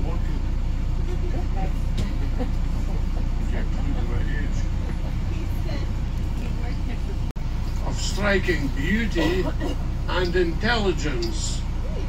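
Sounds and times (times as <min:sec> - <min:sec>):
bus engine rumbling: 0:00.0 - 0:12.0.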